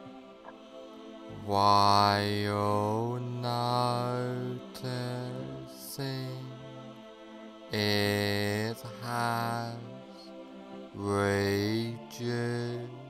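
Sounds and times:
low wordless chant-like drone: 0.0s - 13.0s.

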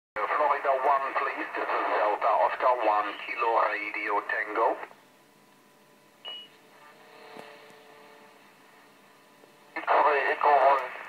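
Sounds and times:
faint hum and hiss: 0.2s - 11.0s
high beep from radio speaker: 6.3s - 6.5s
radio click: 10.5s - 11.0s.

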